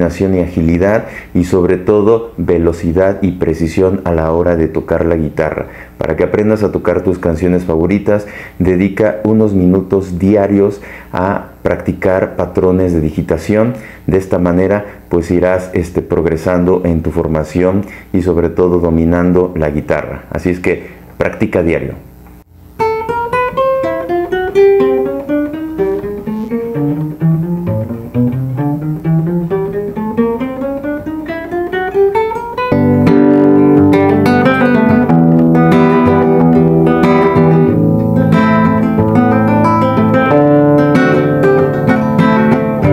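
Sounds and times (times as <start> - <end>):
acoustic guitar picked notes: 22.5 - 42.9
strummed guitar chords: 22.8 - 42.9.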